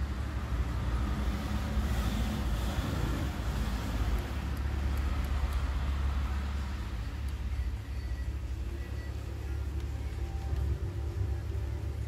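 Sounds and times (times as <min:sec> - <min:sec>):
film soundtrack through car speakers: 0:00.0 - 0:12.0.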